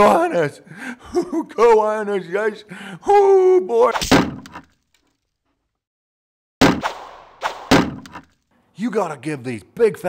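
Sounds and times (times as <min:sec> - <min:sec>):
cartoon whack: 0:03.9 - 0:04.5, 0:06.6 - 0:08.2.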